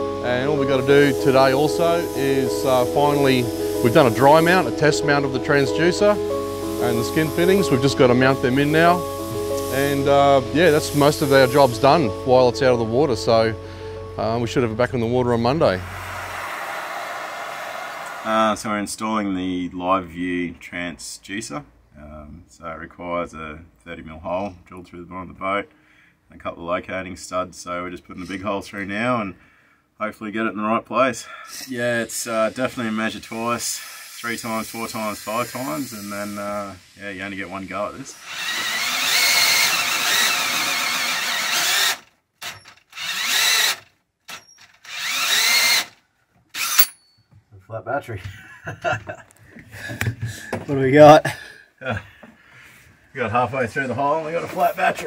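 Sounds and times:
cordless drill boring: 0:15.8 - 0:18.3, 0:33.4 - 0:36.5, 0:38.0 - 0:47.0.

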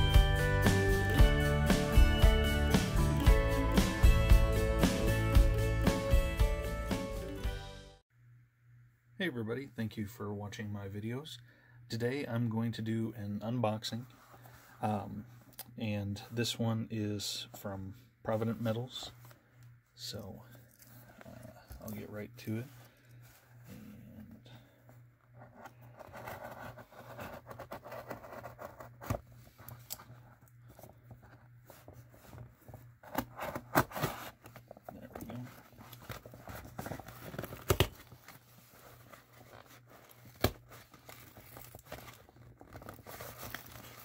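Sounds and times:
cardboard box rustling: 0:25.3 - 0:44.0.

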